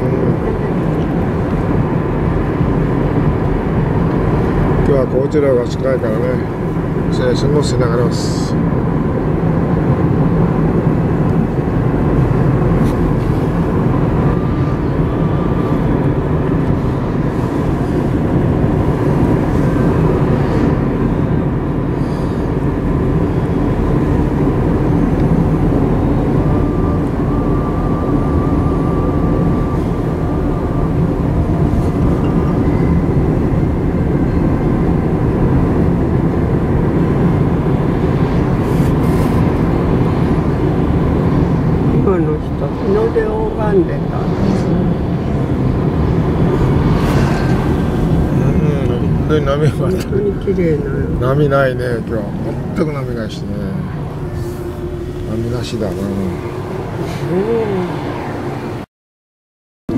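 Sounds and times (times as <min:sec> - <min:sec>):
car road noise from cabin: 0:00.0 - 0:58.9.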